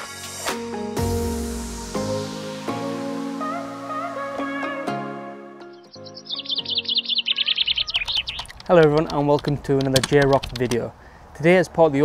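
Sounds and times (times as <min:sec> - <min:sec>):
soft intro music: 0:00.0 - 0:07.8
small bird chirping: 0:05.7 - 0:08.6.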